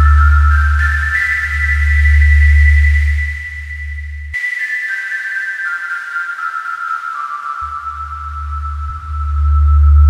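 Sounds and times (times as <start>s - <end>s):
synthesizer bass drone: 7.7s - 10.0s.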